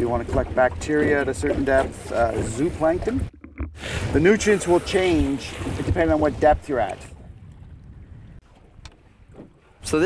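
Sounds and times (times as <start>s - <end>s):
wind rumbling on microphone: 0.0s - 10.0s
man speaking: 4.1s - 7.0s.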